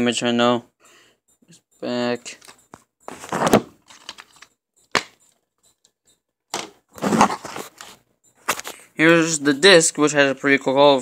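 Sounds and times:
rustling handling noise: 2.2 - 4.5, 6.9 - 9.5.

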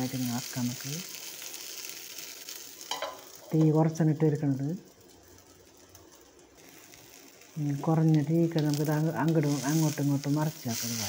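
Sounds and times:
food sizzling in a pan: 0.0 - 11.0
person speaking: 3.5 - 4.8, 7.6 - 11.0.

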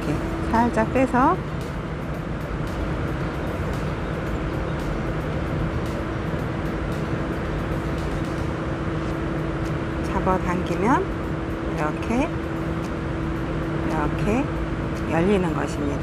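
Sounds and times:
machine hum: 0.0 - 16.0.

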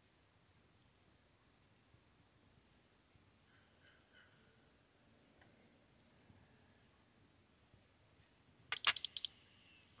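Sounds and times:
monitor click: 8.7 - 9.1
short high beeps: 8.7 - 9.3.

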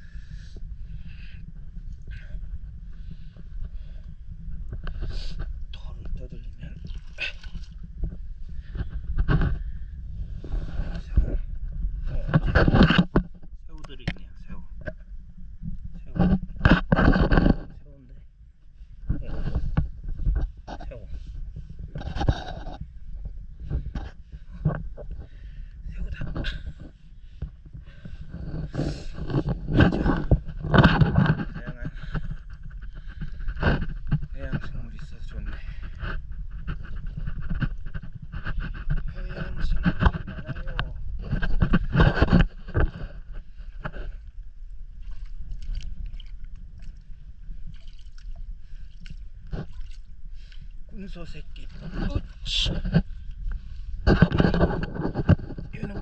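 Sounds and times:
low wind rumble: 0.0 - 56.0.

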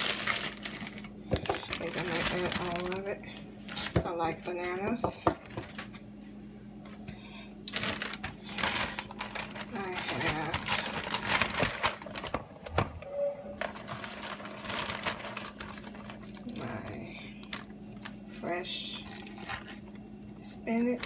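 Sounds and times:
plastic bag crinkling: 0.0 - 4.1, 7.6 - 20.0
steady low hum: 0.0 - 21.0.

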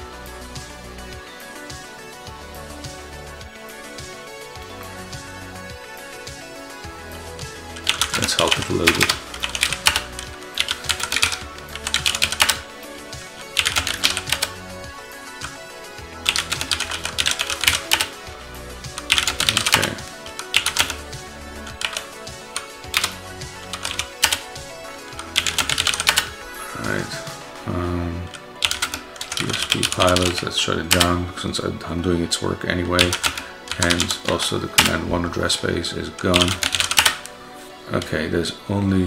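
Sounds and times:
quiet background music: 0.0 - 39.0
computer keyboard typing: 7.8 - 12.7, 13.5 - 14.6, 16.2 - 18.2, 18.9 - 21.1, 21.7 - 26.4, 28.2 - 31.1, 33.0 - 35.0, 36.2 - 37.3.

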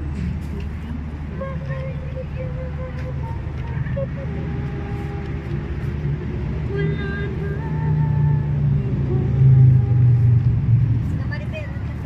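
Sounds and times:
steady low rumble: 0.0 - 12.0
woman singing karaoke: 0.6 - 6.0, 6.6 - 10.4.

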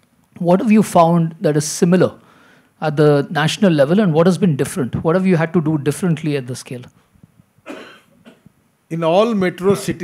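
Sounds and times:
person coughing: 7.6 - 8.5.

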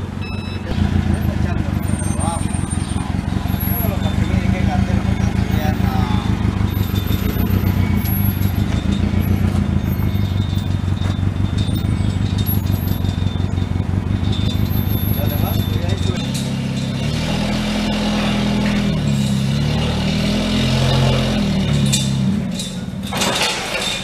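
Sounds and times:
forklift engine humming: 0.0 - 24.0.

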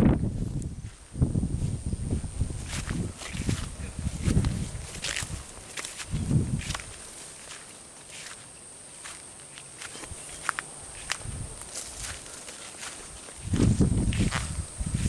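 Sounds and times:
brush crackling: 0.0 - 15.0
footsteps through grass and scrub: 0.2 - 15.0.

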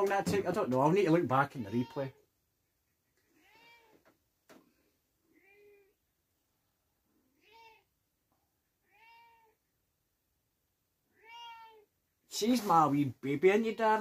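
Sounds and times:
cat meowing faintly: 1.5 - 2.2, 3.3 - 4.1, 5.3 - 6.0, 7.2 - 7.9, 8.8 - 9.6, 11.1 - 11.9.

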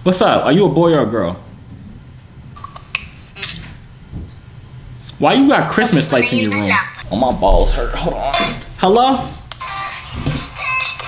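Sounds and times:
low room hum: 0.0 - 10.8.

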